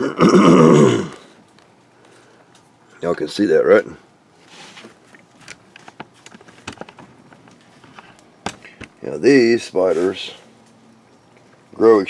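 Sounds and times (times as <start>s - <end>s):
man coughing: 0.0s - 1.2s.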